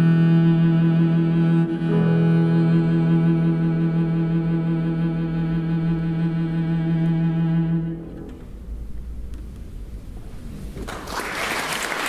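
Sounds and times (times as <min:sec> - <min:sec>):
cello bowed note with vibrato: 0:00.0 - 0:08.4.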